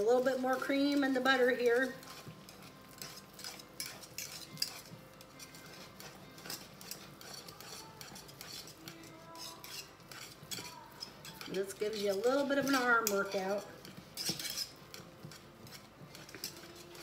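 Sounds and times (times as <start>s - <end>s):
metal whisk scraping a saucepan: 0.0s - 17.0s.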